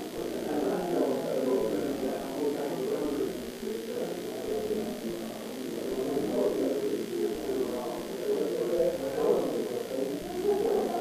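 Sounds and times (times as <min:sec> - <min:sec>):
muffled chatter of people: 0:00.0 - 0:11.0.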